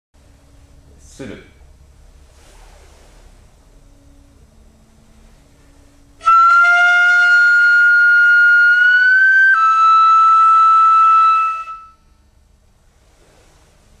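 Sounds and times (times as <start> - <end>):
bamboo flute sliding note: 5.1 - 12.3.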